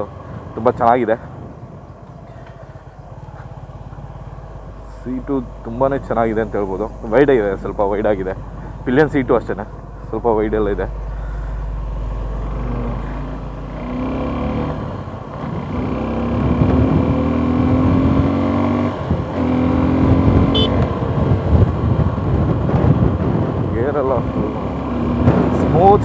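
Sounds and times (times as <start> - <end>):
motorcycle engine accelerating: 1.7 - 26.0.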